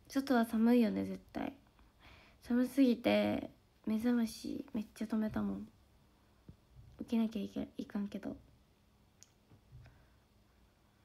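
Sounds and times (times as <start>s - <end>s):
soft clicks: 9.2s - 9.6s.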